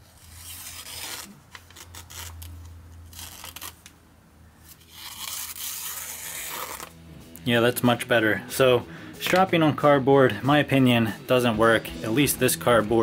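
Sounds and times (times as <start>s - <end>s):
knife slicing through paper: 0.0s - 3.8s, 4.7s - 6.9s.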